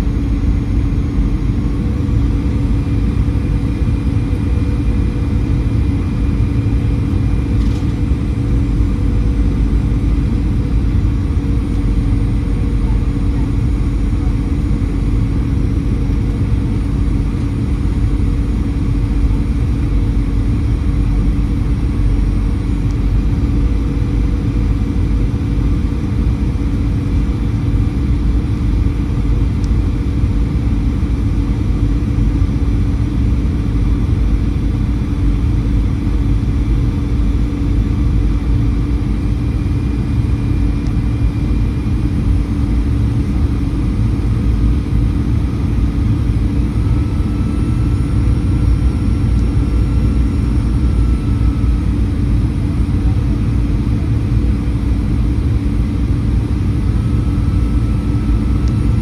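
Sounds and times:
constant low hum: 0.0 - 59.0
jet engine noise in cabin: 0.0 - 59.0.

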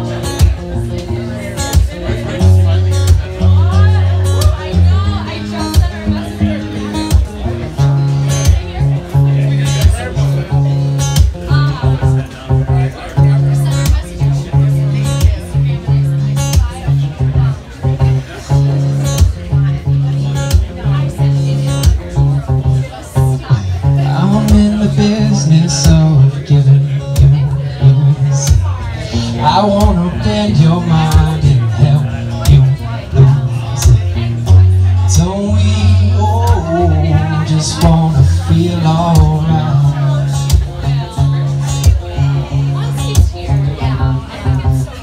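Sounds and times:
acoustic guitar strumming: 0.0 - 45.0.

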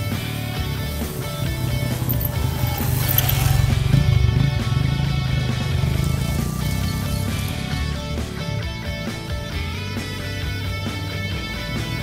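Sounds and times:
motorcycle engine passing: 0.0 - 9.5
background music: 0.0 - 12.0.

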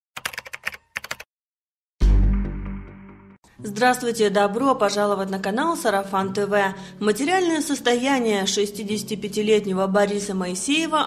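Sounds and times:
keyboard typing clicks: 0.2 - 1.3.

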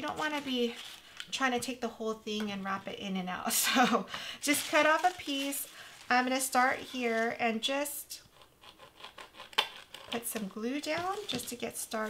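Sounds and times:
crepe paper rustling: 4.4 - 7.4, 8.6 - 12.0
nozzle scratching on styrofoam: 4.4 - 7.4.

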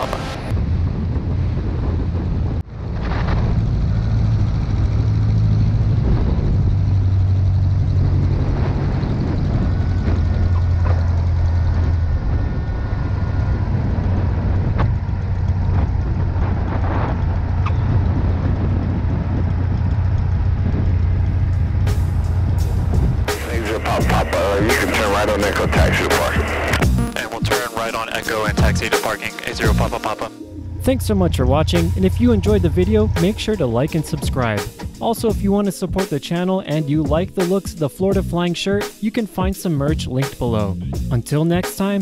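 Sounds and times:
light aircraft engine droning: 0.0 - 27.4, 28.0 - 35.0.

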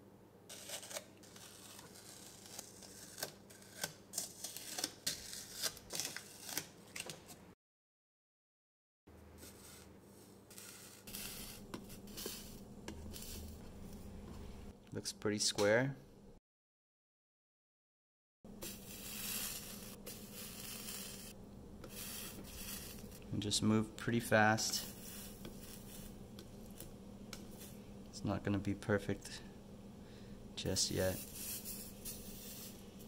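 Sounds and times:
steady low hum: 9.1 - 16.4, 18.5 - 33.0
gloved hands rubbing and shuffling: 9.3 - 14.7, 18.6 - 23.3, 24.6 - 27.9, 30.8 - 33.0
soldering sizzle and crackle: 10.5 - 13.6, 18.6 - 23.2, 24.5 - 27.8, 30.8 - 33.0.

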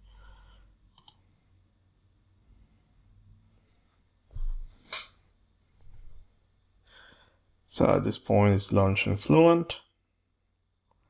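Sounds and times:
computer mouse clicks: 0.9 - 1.3.

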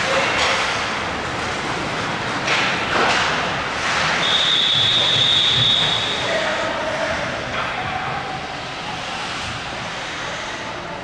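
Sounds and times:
referee's whistle blast: 4.2 - 6.2.

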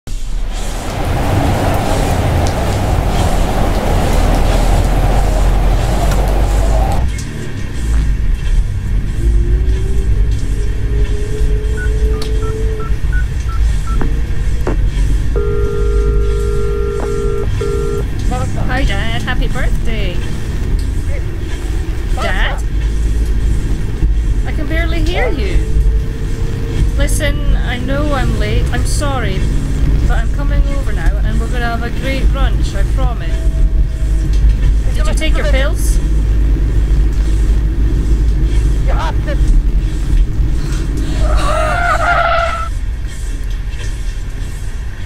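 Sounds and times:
car interior engine rumble: 0.1 - 45.0
rushing noise: 0.1 - 45.0
phone ringing tone: 15.4 - 18.0
person speaking: 24.5 - 25.8.

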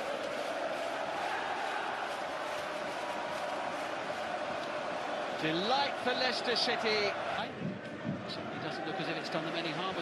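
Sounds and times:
stadium crowd cheering and singing: 0.0 - 10.0.

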